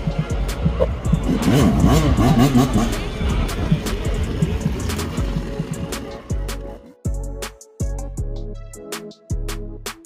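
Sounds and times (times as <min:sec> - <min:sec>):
music playing: 0:00.0 - 0:10.0
dirt bike engine revving: 0:00.3 - 0:06.5.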